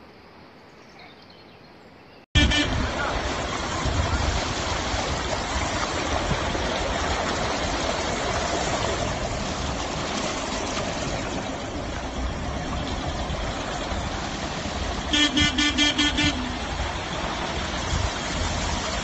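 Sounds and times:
floodwater rushing and churning: 2.4s - 19.0s.

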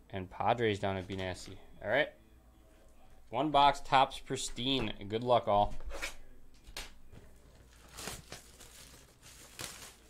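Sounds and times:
plastic shrink-wrap tearing: 7.7s - 10.0s.

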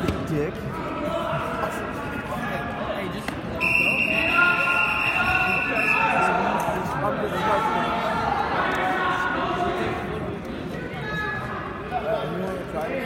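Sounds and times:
spectators' voices: 0.0s - 13.0s.

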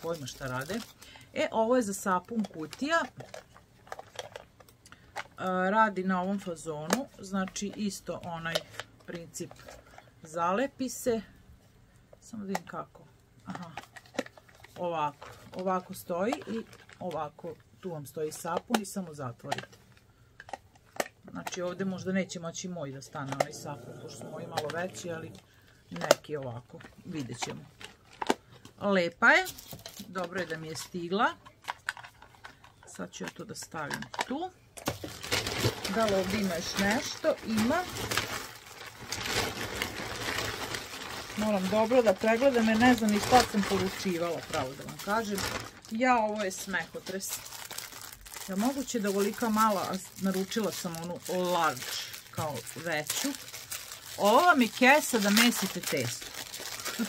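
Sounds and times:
woman's voice: 0.0s - 3.2s, 5.4s - 9.6s, 10.2s - 11.3s, 12.2s - 13.8s, 14.8s - 19.7s, 21.3s - 27.7s, 28.8s - 31.4s, 35.8s - 38.0s, 41.3s - 47.4s, 48.4s - 53.4s, 54.1s - 57.0s
plastic packaging crinkling: 0.0s - 5.4s, 13.5s - 17.6s, 24.5s - 28.7s, 29.3s - 32.9s, 34.8s - 57.0s.

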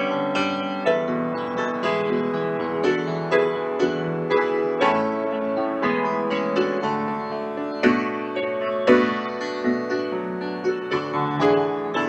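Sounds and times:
solo piano chords: 0.0s - 12.0s.

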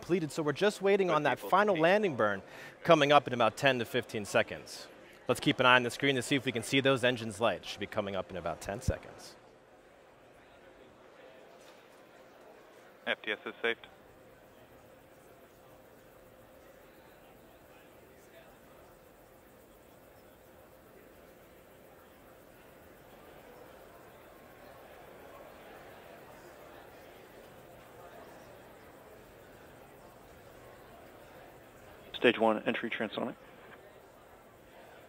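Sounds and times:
faint steady hiss: 0.0s - 35.0s
thin constant hum: 0.0s - 35.0s.

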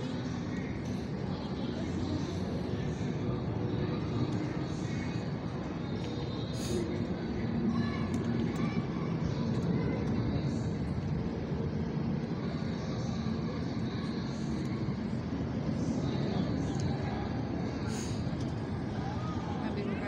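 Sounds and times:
faint voices: 0.0s - 20.0s
low city rumble: 0.0s - 20.0s.

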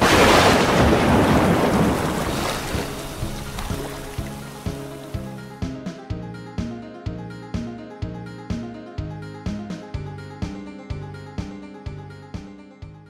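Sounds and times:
thunderclap crash: 0.0s - 4.2s
background music with steady beat: 3.0s - 13.0s.

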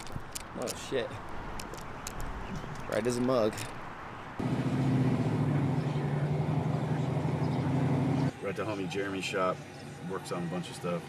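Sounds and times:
car engine humming: 1.2s - 8.3s.

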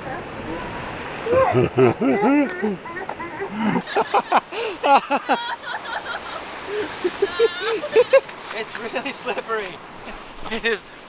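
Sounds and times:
ocean surf washing over rocks: 0.0s - 11.0s
person calling out and laughing: 1.3s - 3.9s, 6.8s - 8.3s.

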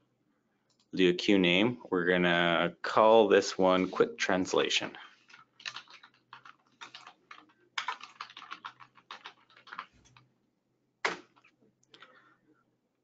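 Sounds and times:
computer keyboard typing: 5.2s - 10.2s.

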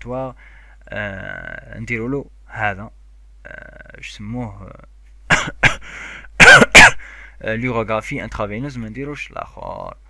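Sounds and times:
man coughing: 5.3s - 7.2s.

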